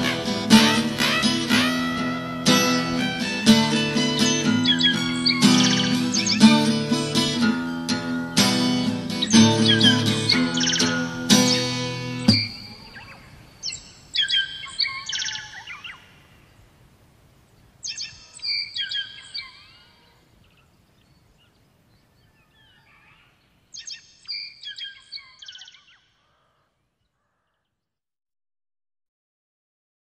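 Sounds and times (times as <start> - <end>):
guitar chord: 0.0 - 12.8
songbird singing: 0.0 - 28.0.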